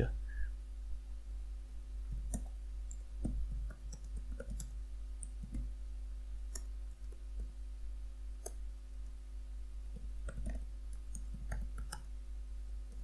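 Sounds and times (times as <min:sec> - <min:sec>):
steady low hum: 0:00.0 - 0:13.0.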